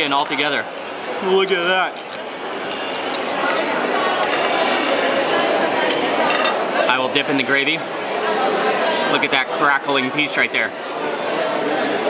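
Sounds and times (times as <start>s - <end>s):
hubbub of diners talking: 0.0s - 12.0s
cutlery and dishes clinking: 2.0s - 3.6s, 4.2s - 5.0s, 5.9s - 6.7s.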